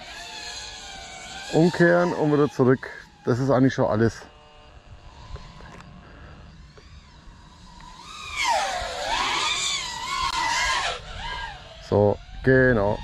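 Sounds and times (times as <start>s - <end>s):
quadcopter motors whining: 0.0s - 13.0s.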